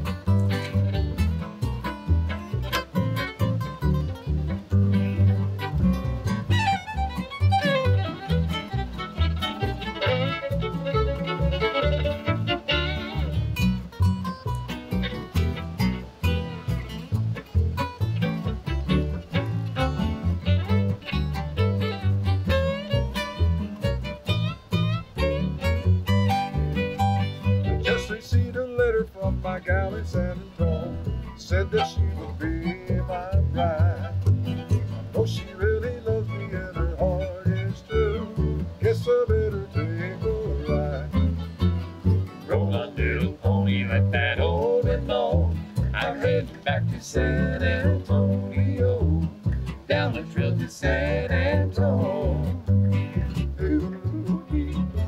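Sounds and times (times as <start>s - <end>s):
fiddle melody: 0.0s - 55.0s
plucked upright bass: 0.0s - 55.0s
strummed acoustic guitars: 0.0s - 55.0s.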